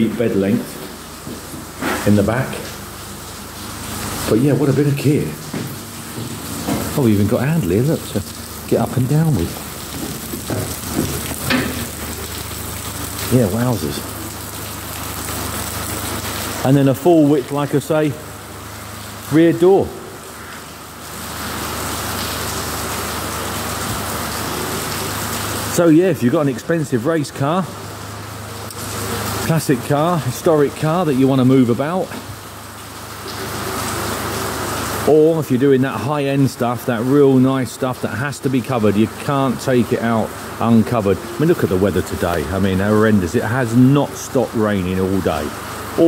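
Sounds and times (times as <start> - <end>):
rain falling: 0.0 - 46.0.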